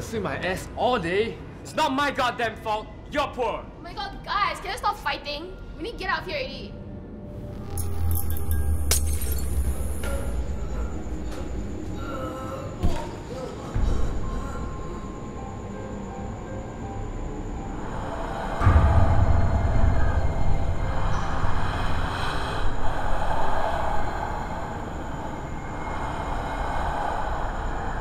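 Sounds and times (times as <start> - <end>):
low rumbling drone: 6.8 - 28.0.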